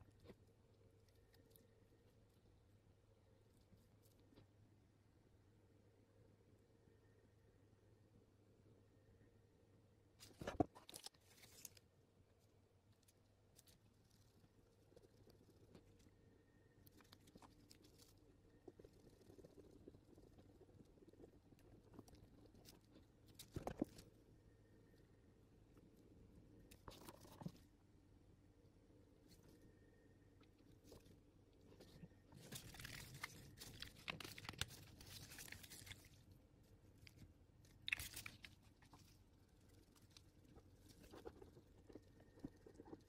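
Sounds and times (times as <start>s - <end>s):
faint crackling and clicking: 30.3s - 43.0s.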